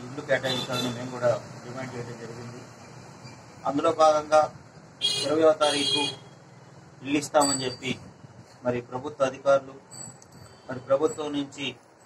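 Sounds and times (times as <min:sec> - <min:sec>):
man speaking: 0:00.0 - 0:02.7, 0:05.2 - 0:06.3.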